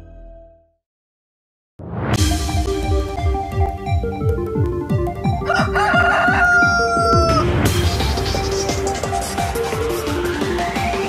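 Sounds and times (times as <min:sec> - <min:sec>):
electronic music with beat: 0:02.2 - 0:11.0
rooster crowing: 0:05.4 - 0:07.5.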